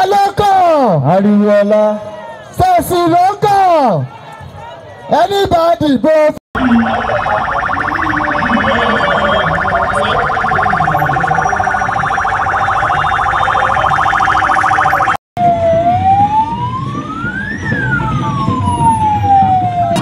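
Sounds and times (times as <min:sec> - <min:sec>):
electronic siren warbling: 0:06.6 - 0:20.0
siren wail: 0:06.6 - 0:20.0.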